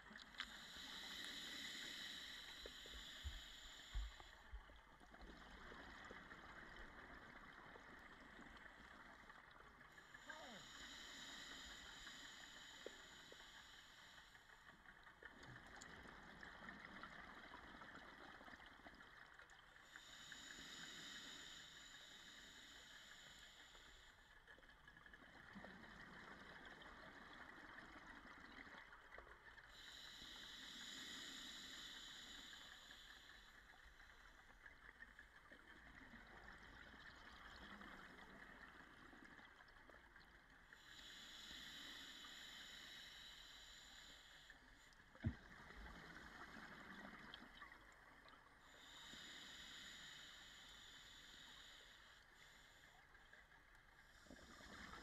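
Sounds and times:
underwater scuba breathing: 0.0 - 55.0.

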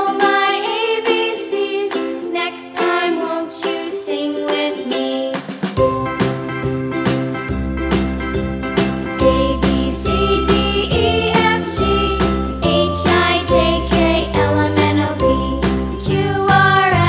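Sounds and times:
children's background music: 0.0 - 17.0.

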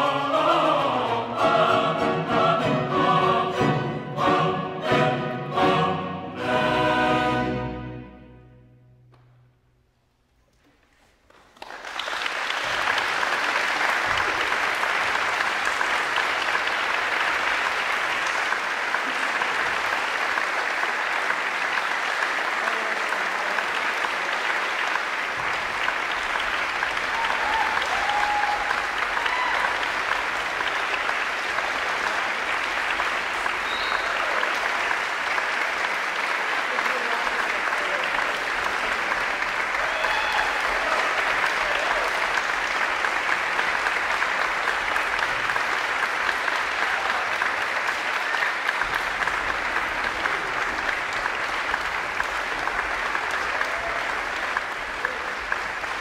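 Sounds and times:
audience applauding: 11.0 - 56.0.

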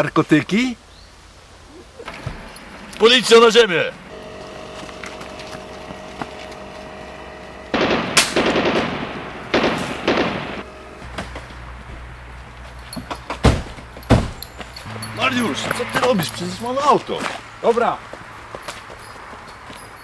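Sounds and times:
engine running close by: 2.0 - 20.0
sharp bangs: 2.1 - 11.7
rapid gunfire bursts: 7.7 - 10.6.

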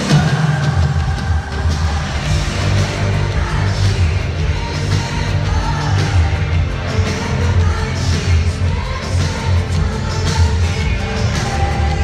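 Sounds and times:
loud live band music: 0.0 - 12.0.

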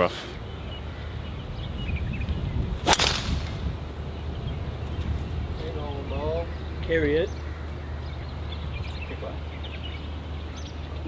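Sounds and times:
golf club striking ball: 2.8 - 3.7.

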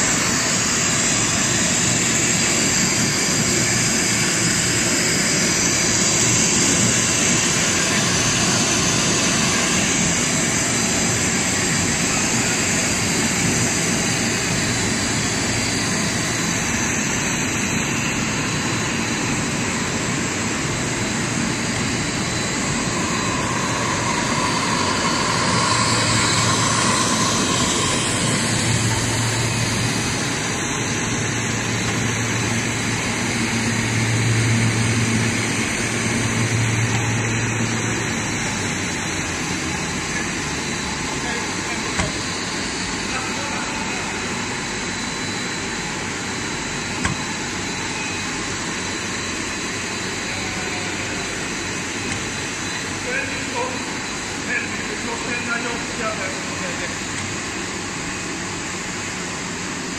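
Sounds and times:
machinery rushing noise: 0.0 - 47.9
low machine hum: 0.0 - 59.9.

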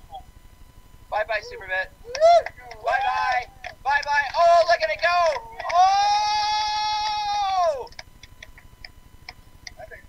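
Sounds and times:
faint voices: 1.1 - 7.4.

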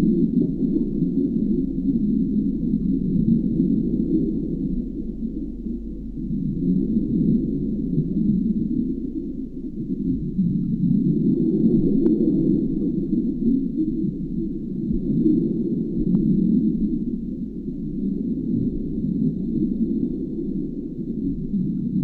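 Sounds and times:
faint high whine: 0.0 - 22.0.

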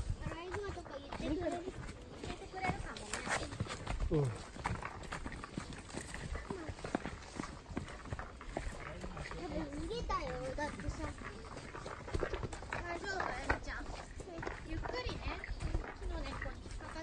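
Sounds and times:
footsteps crunching on dirt trail: 0.0 - 17.0.

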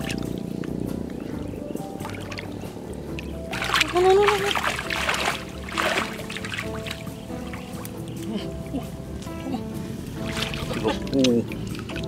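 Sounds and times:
background music: 0.0 - 12.0
hands splashing in muddy water: 3.2 - 8.3, 10.2 - 12.0.

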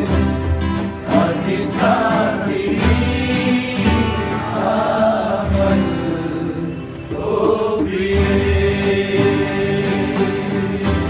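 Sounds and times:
men singing together: 0.0 - 11.0
strummed acoustic guitars: 0.0 - 11.0.

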